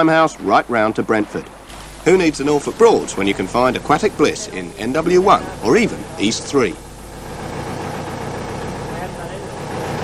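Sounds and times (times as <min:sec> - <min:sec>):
boat engine chugging: 0:00.0 - 0:10.0.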